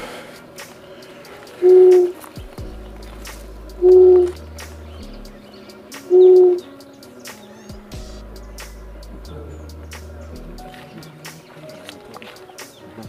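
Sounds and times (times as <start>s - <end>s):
owl hooting: 0.4s - 2.6s, 3.8s - 9.7s.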